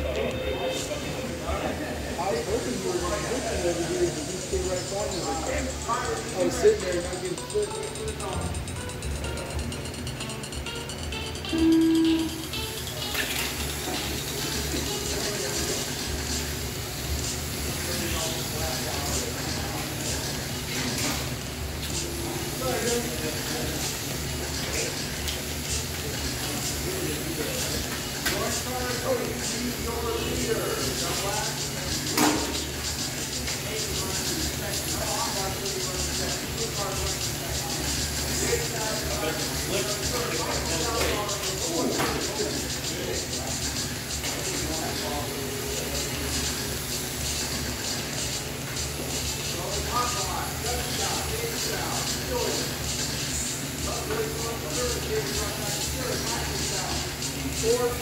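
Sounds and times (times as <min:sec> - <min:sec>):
background chatter: 0:00.0 - 0:58.0
steady hiss and hum: 0:00.0 - 0:58.0
electric toy cars running: 0:01.5 - 0:11.3, 0:12.7 - 0:58.0.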